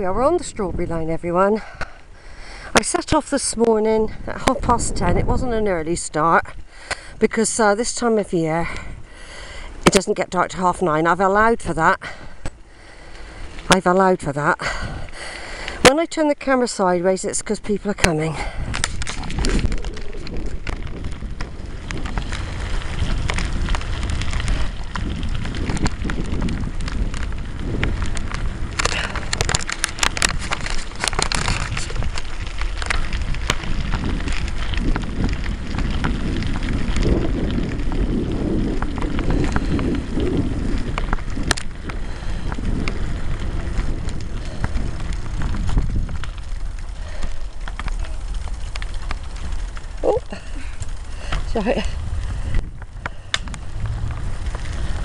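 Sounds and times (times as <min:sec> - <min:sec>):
wind noise on microphone: 0:00.0 - 0:55.0.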